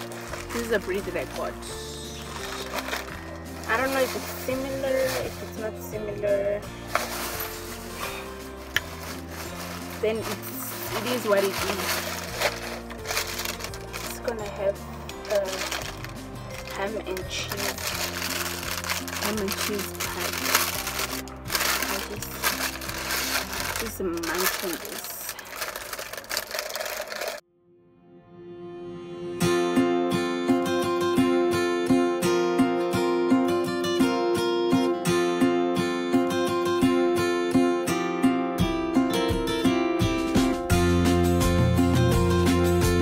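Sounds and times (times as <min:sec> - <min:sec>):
paper and foil wrapper crinkling: 0:00.0 - 0:05.9, 0:06.8 - 0:27.4
background music with low notes: 0:00.0 - 0:43.0.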